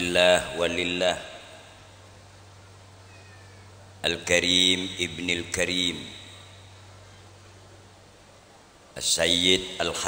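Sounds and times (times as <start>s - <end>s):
faint background noise: 0.0s - 10.0s
faint falling call: 3.0s - 3.8s.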